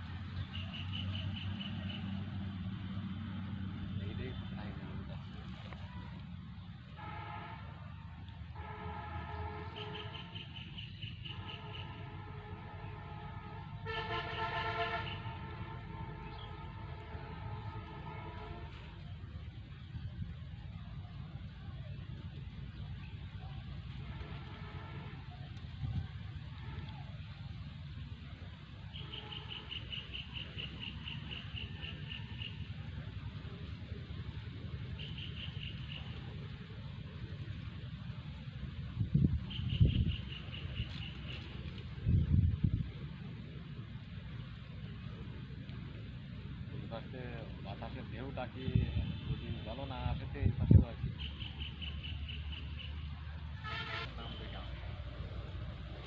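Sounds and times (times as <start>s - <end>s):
horn sounding long notes: 6.9s - 10.5s, 11.3s - 19.2s, 23.9s - 25.4s, 53.6s - 55.0s
insect chirping: 28.9s - 32.8s
wind rumble on microphone: 37.3s - 43.9s, 48.4s - 51.4s.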